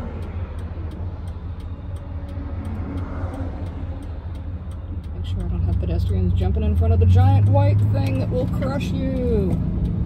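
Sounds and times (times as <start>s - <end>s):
van engine and road noise: 0.0s - 10.0s.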